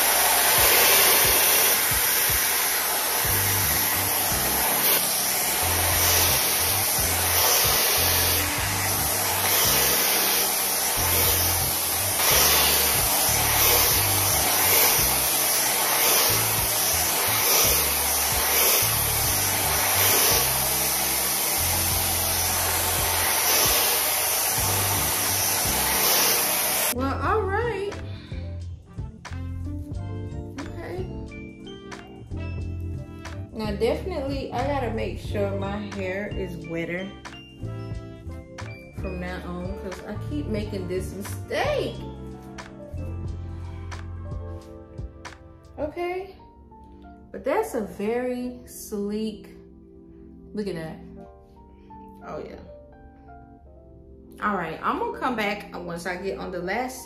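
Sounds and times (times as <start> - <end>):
hair dryer blowing: 0.0 - 27.1, 38.7 - 45.4.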